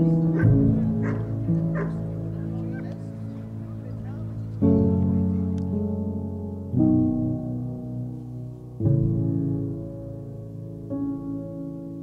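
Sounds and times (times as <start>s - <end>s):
background music with held notes: 0.0s - 12.0s
dog barking: 0.3s - 2.1s.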